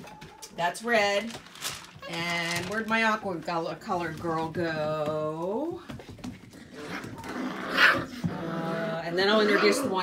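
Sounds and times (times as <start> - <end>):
puppies playing and wrestling: 0.0 - 10.0
loud puppy vocalisation: 6.6 - 10.0.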